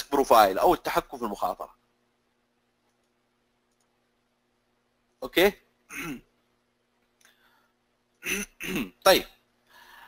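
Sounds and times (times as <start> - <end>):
man clearing his throat: 5.9 - 6.3, 8.2 - 9.0.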